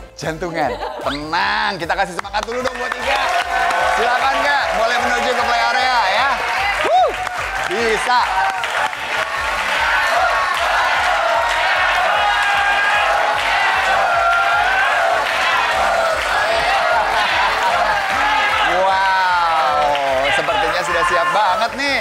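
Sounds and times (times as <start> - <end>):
upbeat background music: 0.0 - 22.0
crowd cheering and clapping: 0.9 - 22.0.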